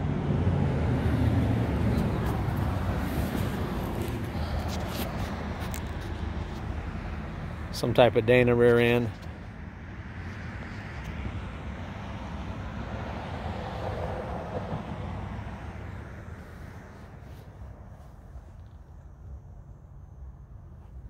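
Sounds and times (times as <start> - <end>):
vehicle passing: 0.0 - 17.8.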